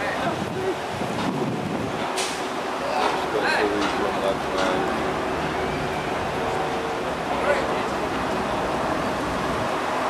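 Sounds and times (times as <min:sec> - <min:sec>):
wind on microphone: 0:00.0 - 0:02.8, 0:08.7 - 0:10.0
faint voices talking: 0:02.7 - 0:09.0.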